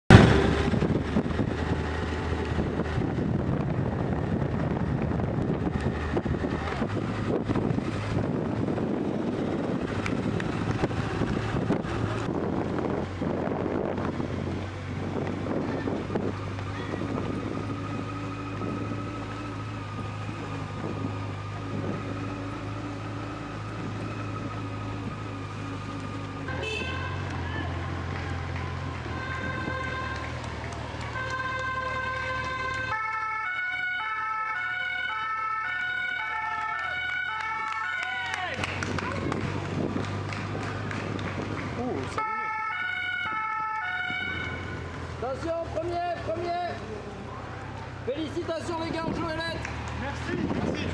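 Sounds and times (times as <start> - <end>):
vehicle engines running: 0.0 - 50.9
wind buffeting microphone: 0.1 - 26.5, 27.9 - 33.3, 38.5 - 45.2, 48.7 - 50.9.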